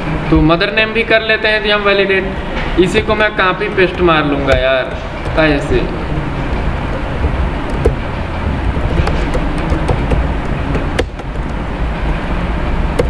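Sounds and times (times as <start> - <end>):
sharp taps: 2.9 - 11.7
computer keyboard and mouse clicks: 6.9 - 8.1, 8.7 - 11.6.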